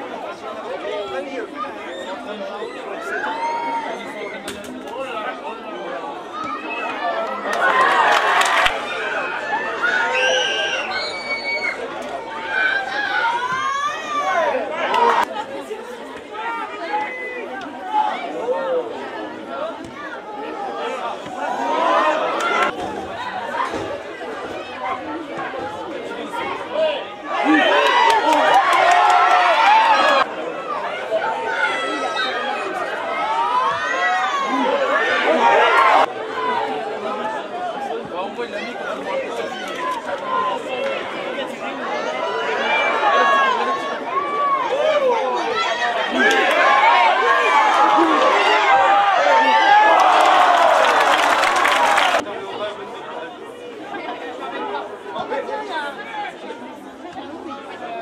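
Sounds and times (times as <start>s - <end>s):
crowd chatter: 0.0s - 58.0s
people shouting and calling out: 0.0s - 58.0s.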